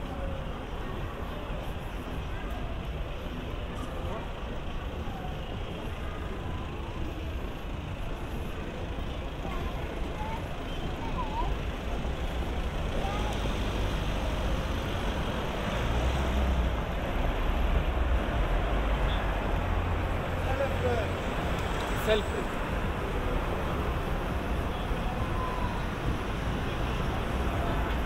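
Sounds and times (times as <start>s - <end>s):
passers-by voices: 0.0s - 28.0s
road traffic passing: 0.0s - 28.0s
vehicle engine rumble: 0.0s - 28.0s.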